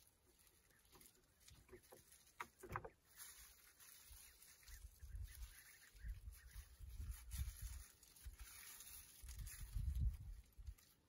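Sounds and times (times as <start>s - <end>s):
plastic bag rustling and scraping: 0.0s - 11.0s.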